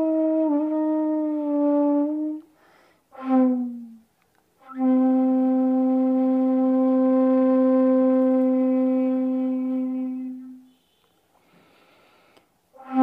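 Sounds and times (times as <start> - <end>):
bamboo flute long low note: 0.0 - 2.4, 3.2 - 4.0, 4.6 - 10.9, 12.8 - 13.0.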